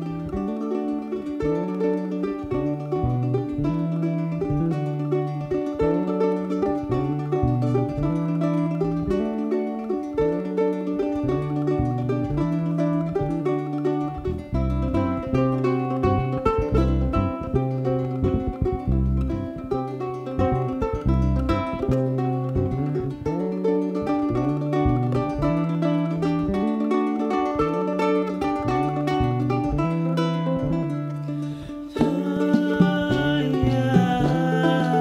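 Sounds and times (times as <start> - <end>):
folk band playing: 0.0 - 35.0
picked acoustic string lead: 0.0 - 35.0.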